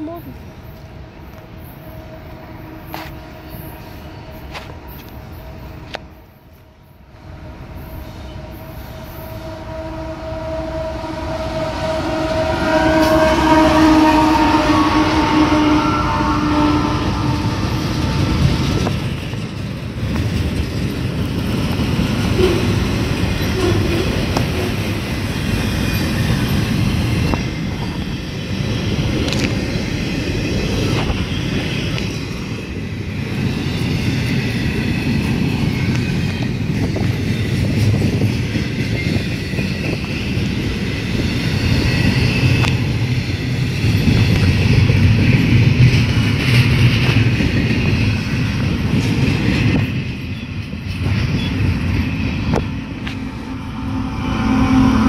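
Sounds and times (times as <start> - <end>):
train wheels rumbling on rails: 0.0 - 55.0
train horn: 1.8 - 6.0, 7.7 - 18.9, 22.2 - 25.1, 52.5 - 55.0.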